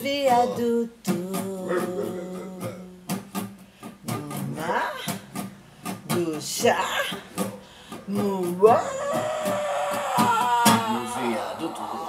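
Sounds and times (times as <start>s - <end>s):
person singing: 0.0s - 3.2s, 4.0s - 5.2s, 6.1s - 12.0s
plucked guitar notes: 0.0s - 9.3s.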